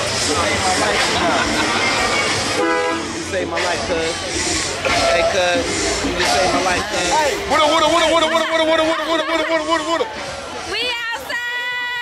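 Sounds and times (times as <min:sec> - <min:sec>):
voices of people milling around: 0:00.0 - 0:12.0
short horn blast: 0:02.5 - 0:03.3, 0:04.8 - 0:05.6.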